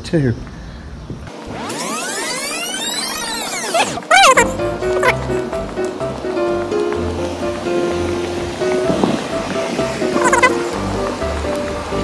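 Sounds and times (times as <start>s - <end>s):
light background music: 4.2s - 12.0s
warbling pitch glide: 10.1s - 10.6s.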